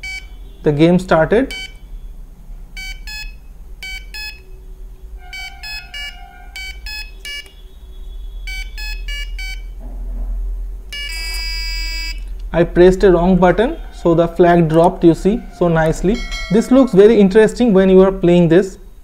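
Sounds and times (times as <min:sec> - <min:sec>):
buzzer short beeps: 0:00.0 - 0:00.6, 0:01.5 - 0:01.9, 0:02.8 - 0:04.5, 0:05.3 - 0:07.6, 0:08.4 - 0:09.8, 0:10.9 - 0:12.3
harsh buzzer buzz: 0:05.2 - 0:07.5, 0:10.9 - 0:12.2.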